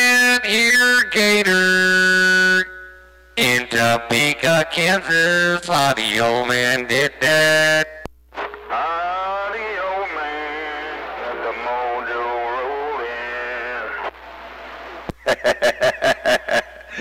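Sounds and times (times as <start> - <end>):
wavering pitched radio tone: 0.0 - 5.6, 6.9 - 15.4.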